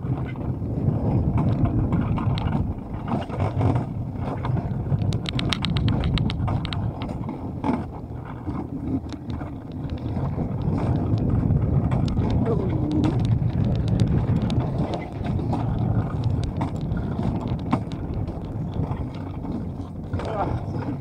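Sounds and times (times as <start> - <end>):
sled wheels rumbling on rails: 0.0 - 21.0
wind on microphone: 0.0 - 21.0
quick run of clicks: 8.5 - 21.0.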